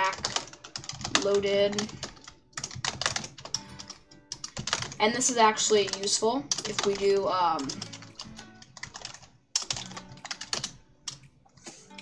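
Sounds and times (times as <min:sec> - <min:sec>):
keyboard typing clicks: 0:05.7 - 0:11.3.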